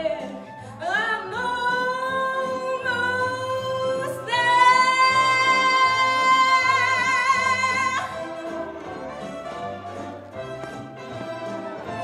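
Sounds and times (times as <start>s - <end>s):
woman singing: 0.0s - 8.6s
instrumental accompaniment: 0.0s - 12.0s.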